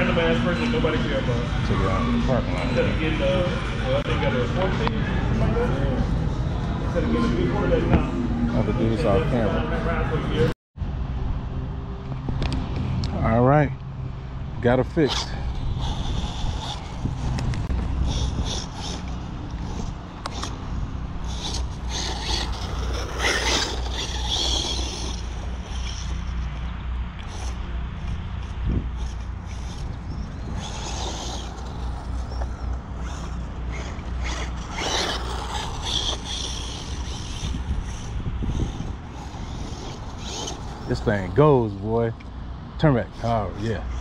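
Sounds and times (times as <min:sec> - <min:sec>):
rc car motor and tyres: 0:00.0 - 0:10.5, 0:12.1 - 0:44.0.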